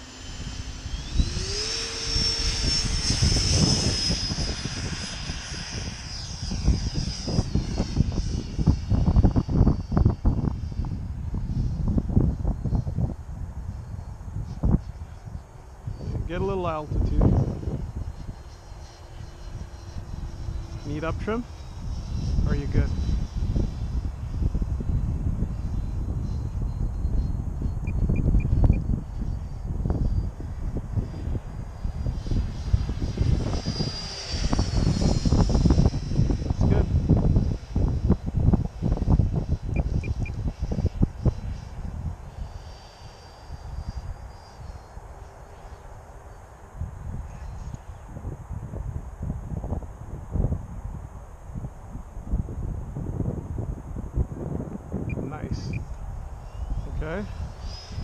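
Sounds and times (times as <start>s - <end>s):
model jet high whine: 0.0s - 58.0s
wind rumbling on microphone: 0.0s - 58.0s.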